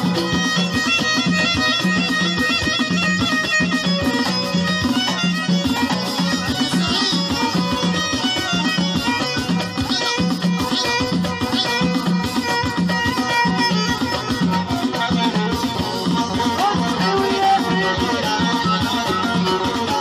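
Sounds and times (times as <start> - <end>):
bowed violin melody: 0.0 - 20.0.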